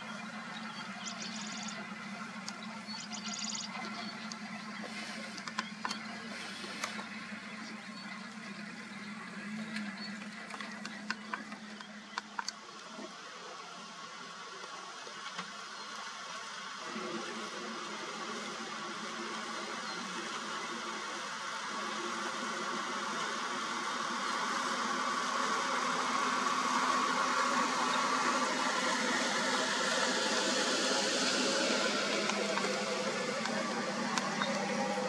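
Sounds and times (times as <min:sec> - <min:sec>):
vehicle engine idling: 0:00.0 - 0:35.0.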